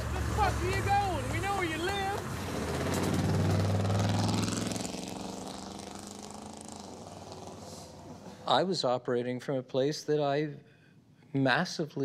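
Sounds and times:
truck engine revving: 0.0s - 8.4s.

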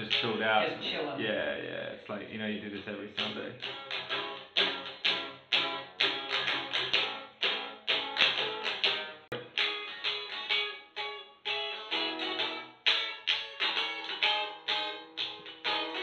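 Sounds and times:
guitar strumming chords: 0.0s - 0.9s, 3.2s - 16.0s.

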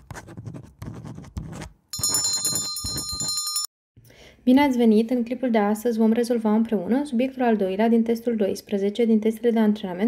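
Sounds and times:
pen scratching on paper: 0.0s - 3.4s
bright ringing chime: 2.0s - 3.7s.

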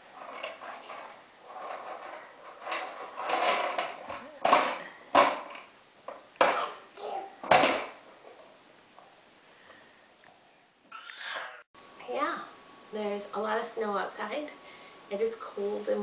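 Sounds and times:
toddler babbling: 6.6s - 7.4s, 10.9s - 11.6s.

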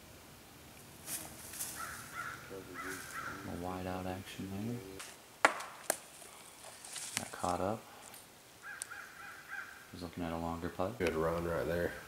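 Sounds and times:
disc knocking against trees: 5.0s - 7.6s.

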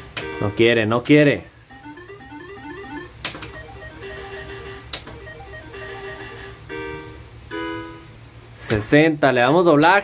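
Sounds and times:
cluster of win tones: 1.7s - 6.6s
slot machine beeps and jingles: 1.7s - 6.6s.

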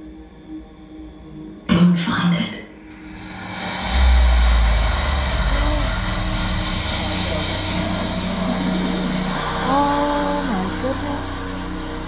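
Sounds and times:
deep rumble: 2.8s - 12.0s.

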